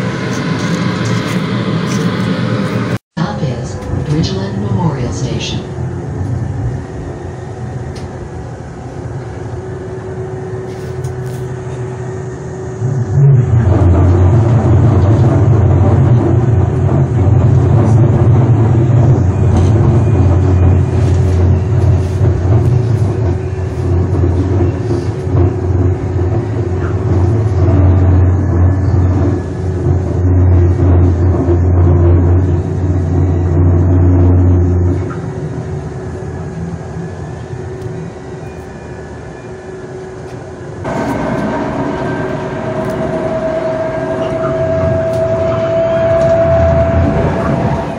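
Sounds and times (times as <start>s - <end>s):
light-rail car rumbling: 0.0s - 47.9s
train whine rising in pitch: 0.0s - 47.9s.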